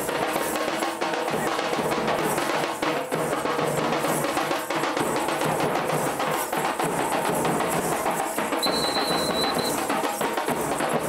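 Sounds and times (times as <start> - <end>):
fast loud drumming: 0.0 - 11.0
high steady tone: 8.6 - 9.9.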